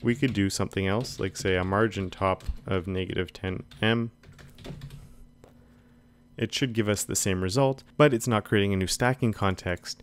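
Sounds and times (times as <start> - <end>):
computer keyboard typing: 0.0 - 5.2.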